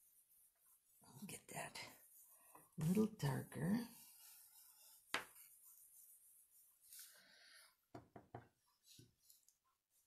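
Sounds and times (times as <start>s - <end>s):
brush tapping on cardstock: 4.8s - 6.1s, 7.9s - 9.4s.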